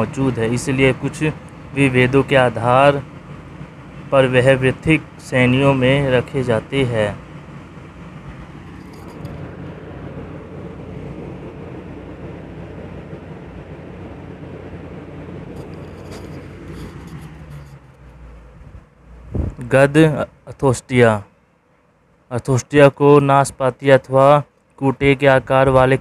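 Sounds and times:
low background rumble: 0:00.0 - 0:22.9.

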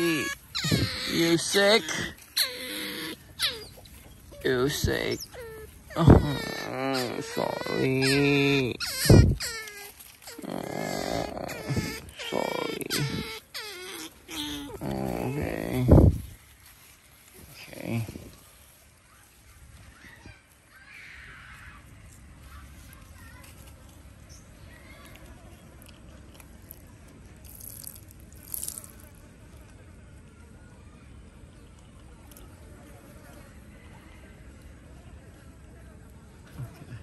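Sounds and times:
otters whining and squealing: 0:00.0 - 0:16.1
urine splashing on wet ground: 0:27.4 - 0:29.2.

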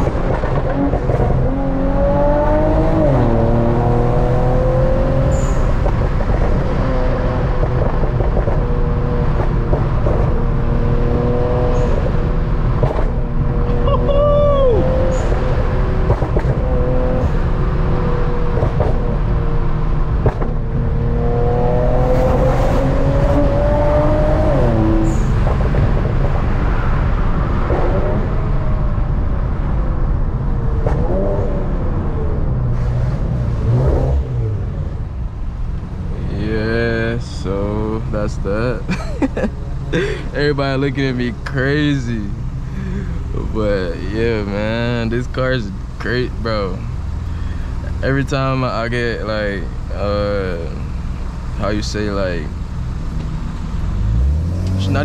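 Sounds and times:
car engine accelerating and shifting: 0:00.0 - 0:55.0.

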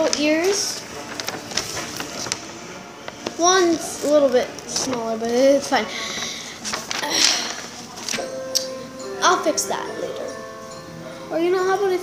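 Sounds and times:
paper clicks and crinkles: 0:00.0 - 0:08.3
paper rustling: 0:00.0 - 0:08.4.

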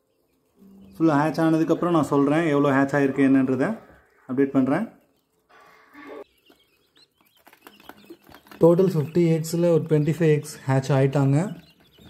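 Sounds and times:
quail chicks peeping: 0:00.0 - 0:12.0.

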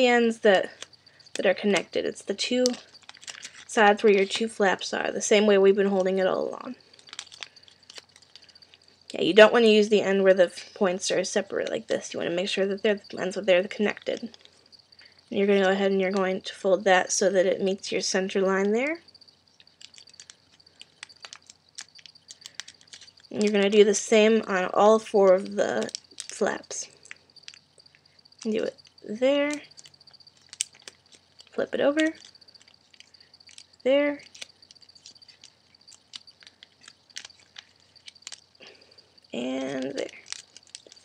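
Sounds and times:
paper being folded: 0:02.6 - 0:04.6, 0:19.7 - 0:24.0, 0:29.5 - 0:38.9, 0:39.6 - 0:41.0
paper being folded and creased: 0:02.8 - 0:04.5, 0:34.2 - 0:38.7, 0:39.6 - 0:41.0.

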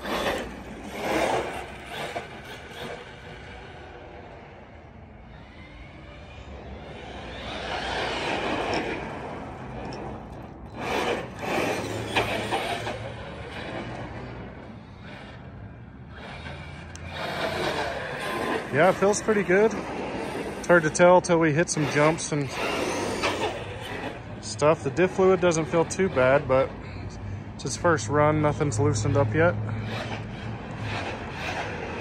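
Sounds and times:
tyre noise on asphalt: 0:00.0 - 0:04.6, 0:05.3 - 0:32.0
rc truck motor whine: 0:00.0 - 0:27.0, 0:27.6 - 0:32.0.

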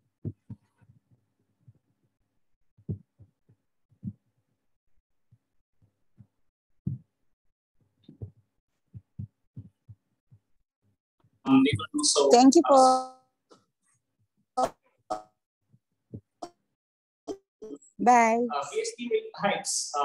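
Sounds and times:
soft low thumps: 0:02.8 - 0:03.3, 0:04.0 - 0:04.2, 0:06.8 - 0:07.1.

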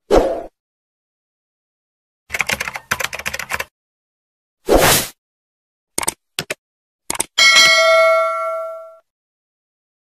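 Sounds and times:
notification bell ding: 0:07.4 - 0:09.0.

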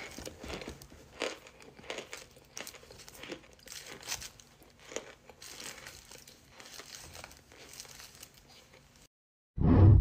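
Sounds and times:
chewing cornstarch crunching: 0:00.0 - 0:09.0.

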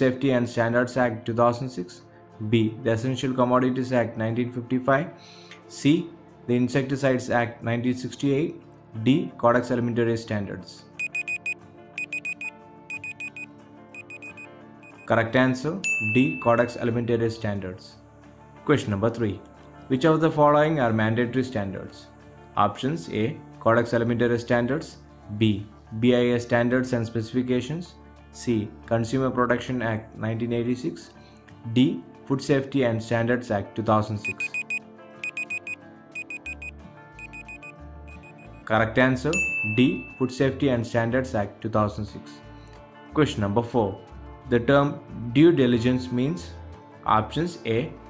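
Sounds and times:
soft background music: 0:00.0 - 0:48.0
alarm clock beeping: 0:11.0 - 0:15.2, 0:34.2 - 0:38.7.

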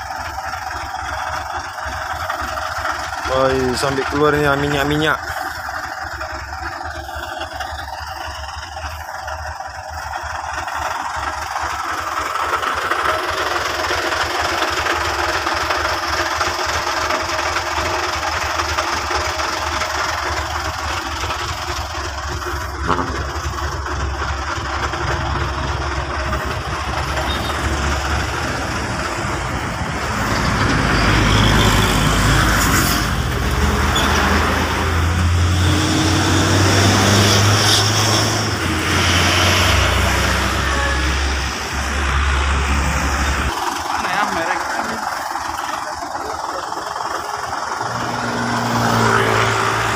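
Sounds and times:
truck engine running: 0:00.0 - 0:49.9.

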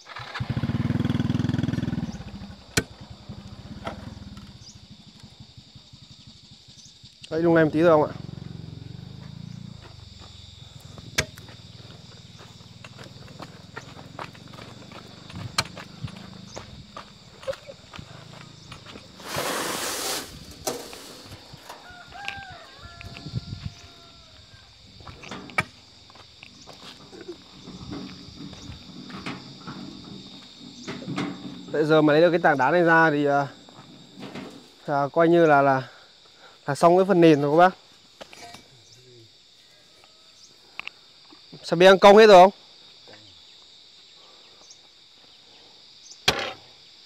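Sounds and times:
insects buzzing: 0:00.0 - 0:47.0
crowbar knocking and scraping stone: 0:26.9 - 0:32.0, 0:38.2 - 0:38.7.

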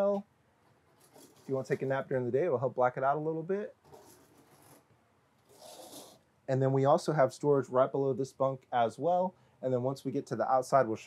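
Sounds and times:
curtain sliding along track: 0:05.5 - 0:06.2.

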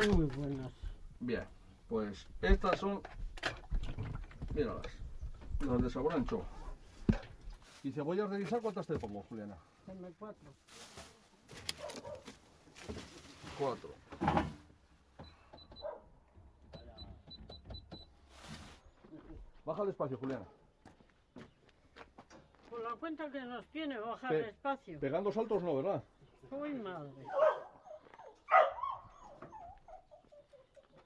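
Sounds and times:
till keypad beeps: 0:15.2 - 0:15.9, 0:16.8 - 0:18.2
dog whining: 0:27.4 - 0:30.9.

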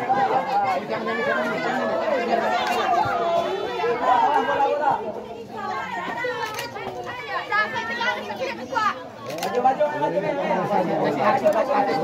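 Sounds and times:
spectators chattering and calling out: 0:00.0 - 0:12.0.

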